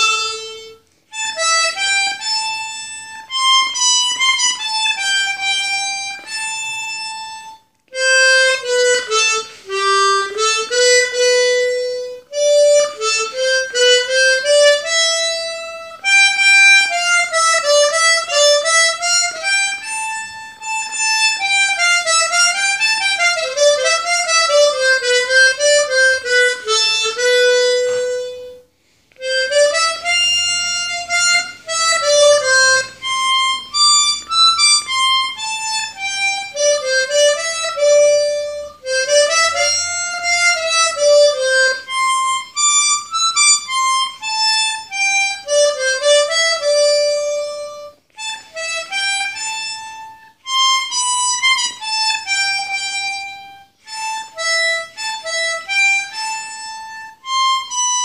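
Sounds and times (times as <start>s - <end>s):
harmonica melody: 0.0s - 58.0s.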